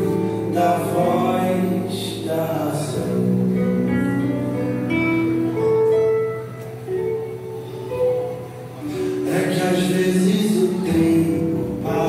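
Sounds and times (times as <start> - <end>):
instrumental music long held notes: 0.0 - 12.0.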